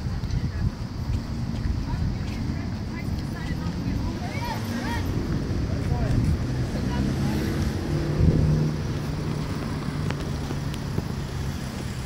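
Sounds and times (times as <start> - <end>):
vehicle engine hum: 0.0 - 12.0
wind rumbling on microphone: 0.0 - 12.0.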